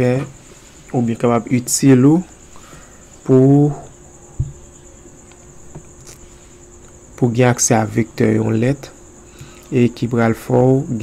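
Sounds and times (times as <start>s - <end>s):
low thump: 4.3s - 4.7s.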